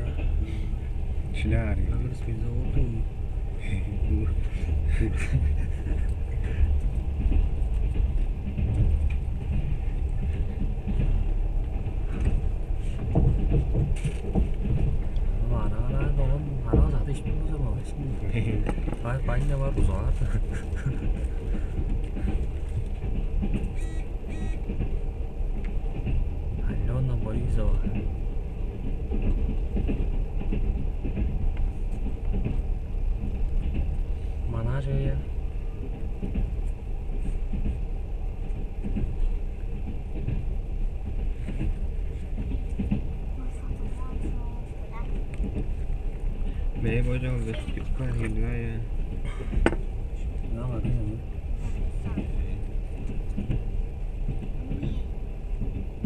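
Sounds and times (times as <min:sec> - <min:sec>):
train carriage rumble: 0:00.0 - 0:56.0.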